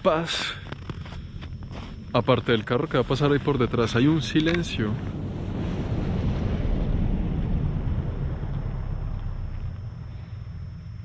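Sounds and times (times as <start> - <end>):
wind buffeting microphone: 0.6 - 10.8.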